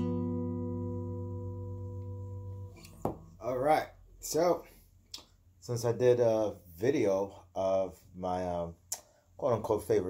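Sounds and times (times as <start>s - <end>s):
electric guitar chord through amp: 0.0s - 2.8s.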